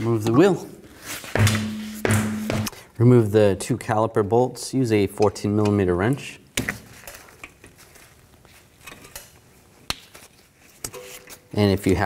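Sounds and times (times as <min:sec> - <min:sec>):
wheel thudding on floor: 0:01.4 - 0:02.8.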